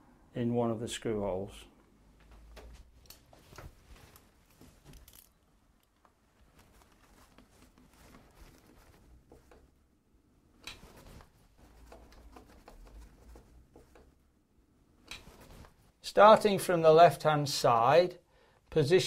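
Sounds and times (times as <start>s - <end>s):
light clicks and rustles of handling: 1.8s - 9.8s, 10.6s - 14.2s.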